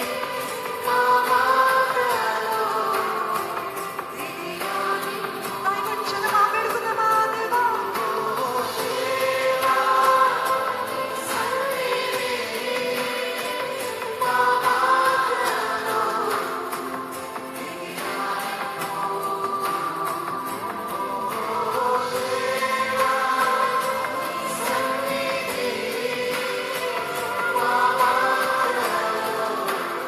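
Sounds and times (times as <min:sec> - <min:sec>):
choir singing worship song: 0:00.0 - 0:30.0.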